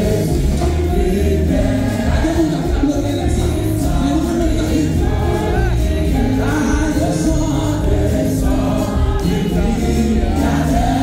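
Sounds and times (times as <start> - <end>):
congregation singing a hymn: 0.0 - 11.0
low bass accompaniment: 0.0 - 11.0.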